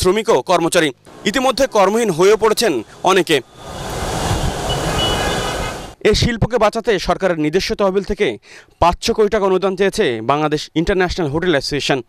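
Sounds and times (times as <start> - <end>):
city traffic noise: 1.0 - 6.0.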